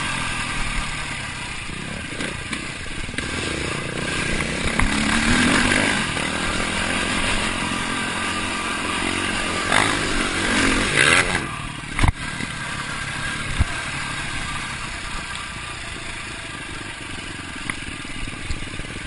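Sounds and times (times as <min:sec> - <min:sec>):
dirt bike engine revving: 0:00.0 - 0:19.0
wind and riding noise: 0:00.0 - 0:19.0.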